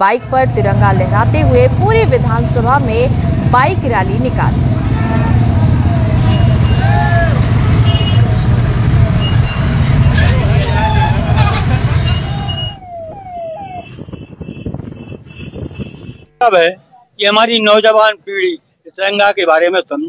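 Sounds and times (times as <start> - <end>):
many motorcycle engines running: 0.0 - 16.7
horns beeping: 0.0 - 17.0
rising siren-like horn: 4.4 - 16.4
people shouting: 4.8 - 7.8.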